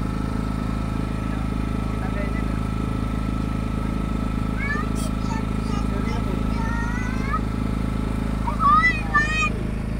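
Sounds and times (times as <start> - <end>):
motorboat engine drone: 0.0 - 9.9
thin steady whine: 0.0 - 9.9.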